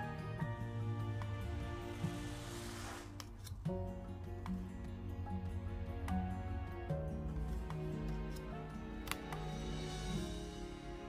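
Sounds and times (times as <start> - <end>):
soft instrumental music: 0.0 - 11.0
card hissing swish: 2.0 - 3.6.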